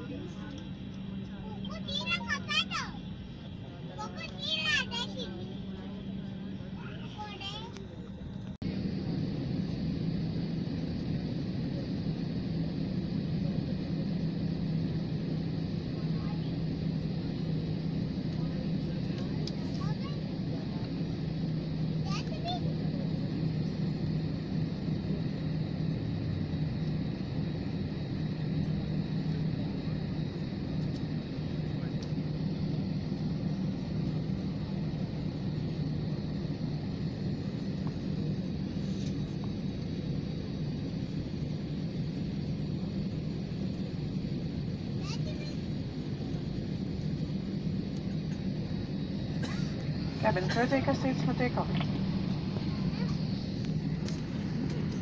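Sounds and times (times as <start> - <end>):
airliner cabin drone: 0.0 - 55.0.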